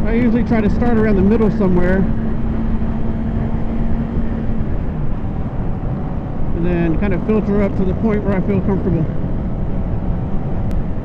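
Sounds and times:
motorcycle engine hum: 0.0s - 11.0s
wind on microphone: 0.0s - 11.0s.

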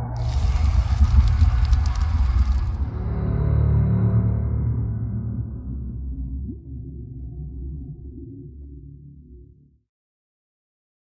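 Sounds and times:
deep low rumble: 0.0s - 9.8s
flame rushing and crackling: 0.2s - 2.9s.

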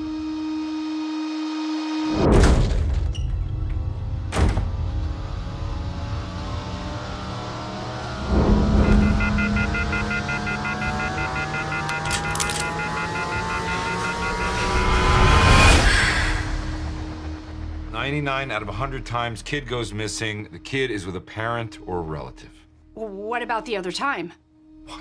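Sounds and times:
rising tone: 4.9s - 19.0s
stuttering high pulses: 7.8s - 19.3s
heavy low hit: 8.1s - 10.4s
sharp hit: 8.1s - 18.6s.

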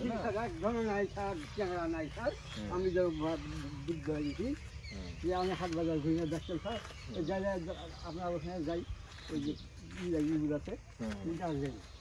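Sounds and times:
person talking: 0.0s - 11.8s.

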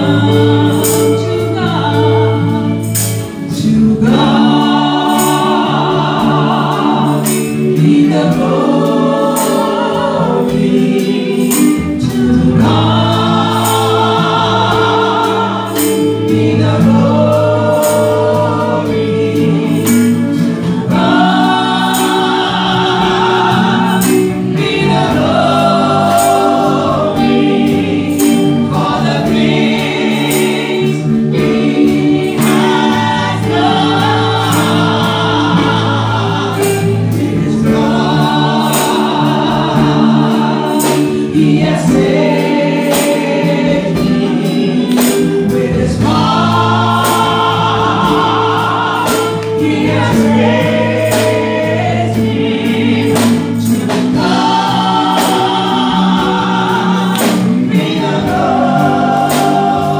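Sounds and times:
instrumental accompaniment with bass: 0.0s - 59.9s
women singing gospel song: 0.0s - 59.9s.

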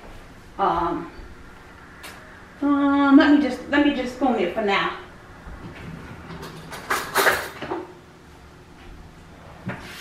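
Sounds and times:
kitchen items knocking and rattling: 6.2s - 7.9s.

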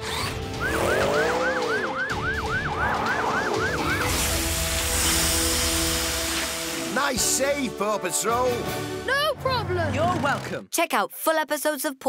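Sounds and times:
cartoon siren whooping: 0.6s - 4.2s
water spraying from hose: 4.1s - 7.4s.

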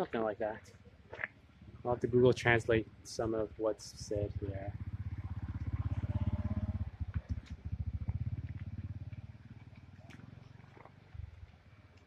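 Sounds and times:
vehicle engine pulsing: 0.2s - 12.0s.

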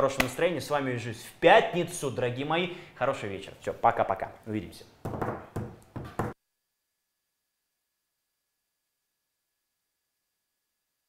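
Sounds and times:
knocks in a small room: 5.0s - 6.4s.

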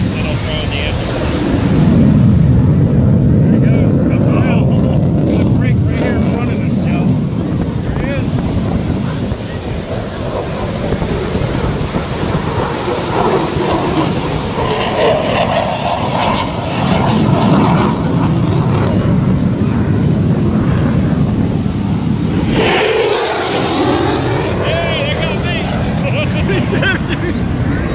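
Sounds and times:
fighter jet flying past: 0.0s - 27.9s
wind on microphone: 0.0s - 27.9s
people talking nearby: 3.4s - 13.2s, 22.5s - 27.6s.

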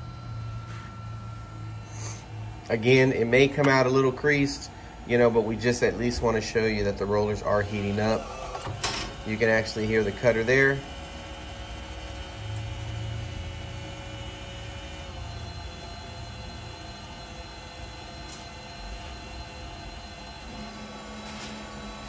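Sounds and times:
laminator motor hum and whir: 0.0s - 22.0s.

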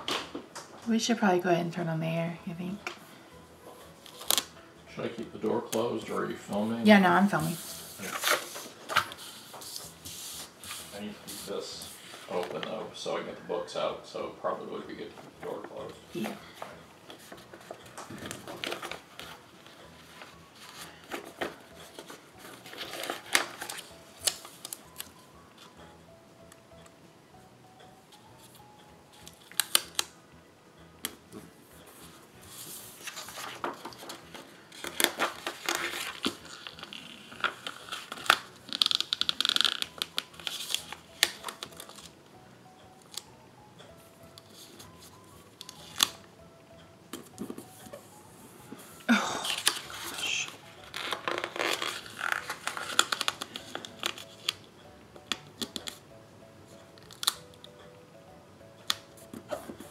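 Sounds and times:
faint background music: 0.0s - 59.9s
paper sheets rustling: 7.4s - 12.8s, 20.2s - 25.1s, 32.5s - 39.8s, 49.4s - 54.6s.

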